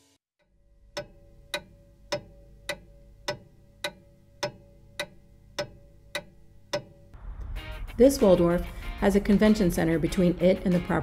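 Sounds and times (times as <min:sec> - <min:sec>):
music: 0:00.0 - 0:00.2, 0:07.2 - 0:11.0
steady ticking: 0:00.4 - 0:07.5.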